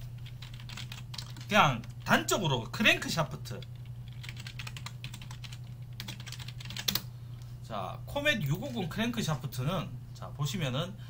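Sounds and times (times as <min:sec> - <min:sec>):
computer keyboard typing: 0:00.2 - 0:02.2, 0:03.5 - 0:07.1.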